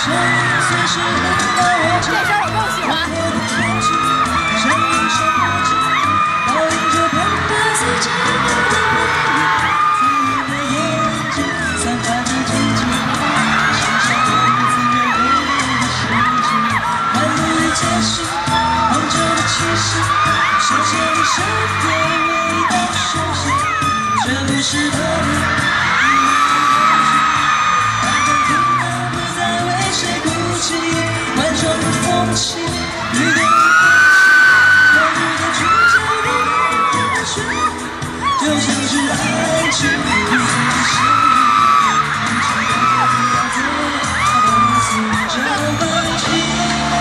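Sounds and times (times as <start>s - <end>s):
crowd screaming and cheering: 0.0s - 47.0s
live pop music with heavy beat: 0.0s - 47.0s.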